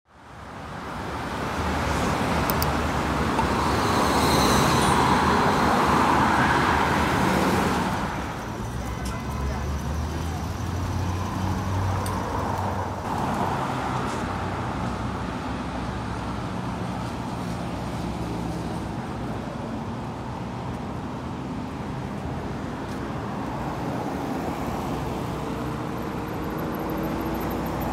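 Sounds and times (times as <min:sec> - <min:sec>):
vehicles passing: 0:00.2 - 0:27.9.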